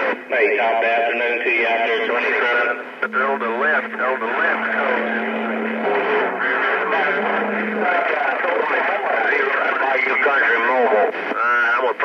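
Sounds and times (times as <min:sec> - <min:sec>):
steady low tone: 0:02.7 - 0:09.8.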